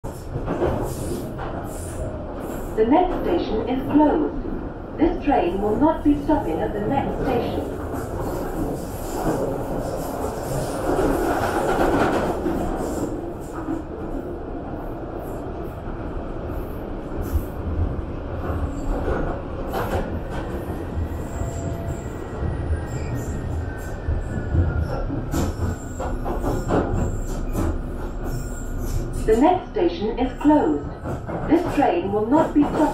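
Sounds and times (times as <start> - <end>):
train wheels rumbling: 0.0 - 32.9.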